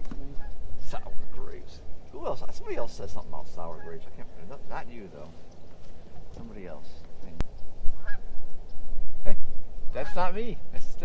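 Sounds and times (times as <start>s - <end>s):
goose honking: 0.2s - 1.7s, 2.3s - 5.4s, 7.9s - 8.6s
wind rumble on microphone: 5.4s - 11.0s.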